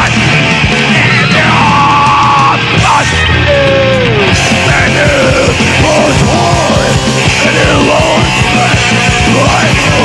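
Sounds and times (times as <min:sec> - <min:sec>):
bass: 0:00.0 - 0:10.0
distorted guitar: 0:00.0 - 0:10.0
drums: 0:00.0 - 0:10.0
person yelling vocals: 0:00.8 - 0:10.0.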